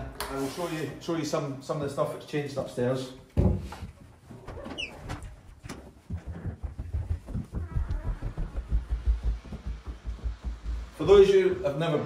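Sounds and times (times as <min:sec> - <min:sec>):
footsteps climbing stairs: 0:03.4 - 0:12.0.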